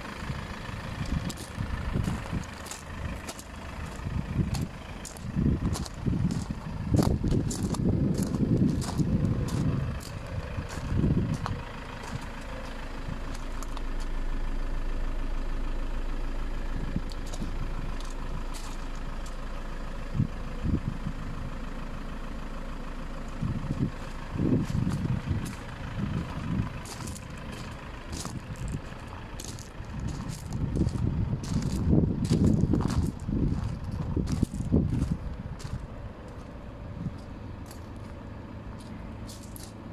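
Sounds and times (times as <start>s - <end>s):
diesel engine idling: 0.0s - 39.9s
wind buffeting microphone: 0.3s - 12.3s, 20.0s - 21.4s, 23.4s - 36.1s.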